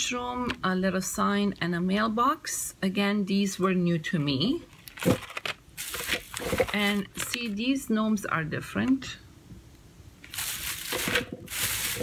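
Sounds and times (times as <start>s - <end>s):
plastic packaging rustling: 4.7s - 7.6s, 10.2s - 12.0s.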